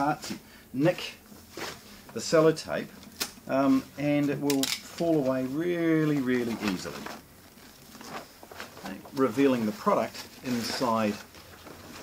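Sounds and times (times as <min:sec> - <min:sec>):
plastic wrapping rustling: 0:00.9 - 0:12.0
light crinkles: 0:01.0 - 0:12.0.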